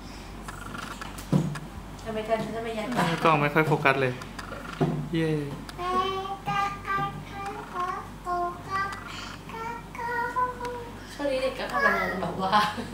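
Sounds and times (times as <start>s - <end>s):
girl singing in high voice: 5.8s - 11.0s.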